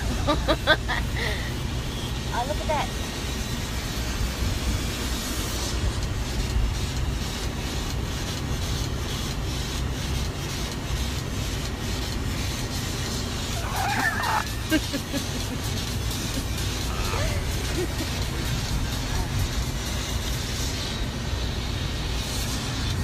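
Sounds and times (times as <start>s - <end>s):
engine and road rumble in van: 0.0s - 23.0s.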